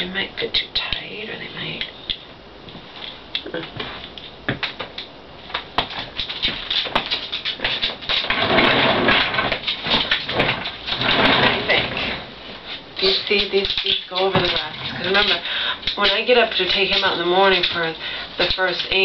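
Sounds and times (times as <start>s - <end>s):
desk chair creak: 6.0s - 12.3s.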